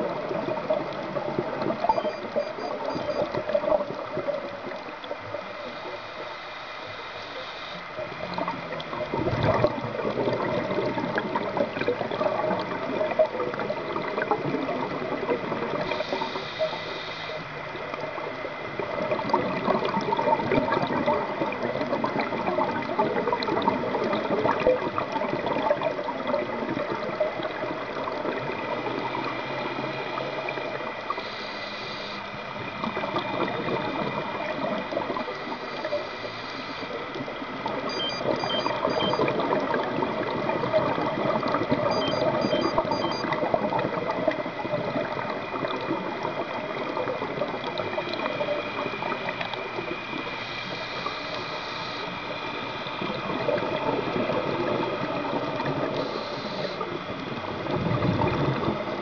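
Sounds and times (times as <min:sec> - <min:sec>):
underwater water rush: 0:00.0 - 0:59.0.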